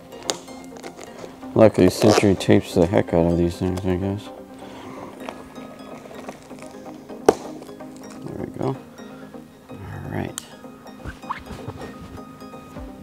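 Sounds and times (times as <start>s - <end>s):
background music: 0.0s - 13.0s
cardboard and tape rustling: 0.2s - 3.0s, 11.0s - 13.0s.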